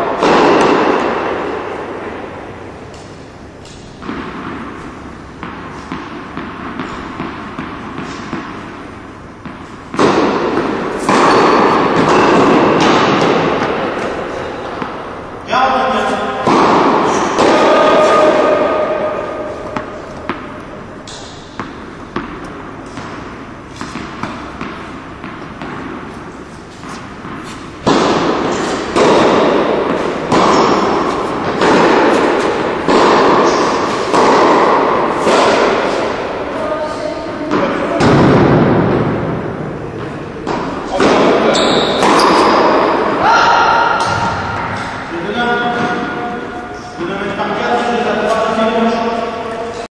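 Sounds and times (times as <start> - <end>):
tennis balls bouncing on court: 0.0 - 15.2, 16.3 - 46.5
tennis balls struck by rackets: 0.0 - 15.4, 16.0 - 46.8.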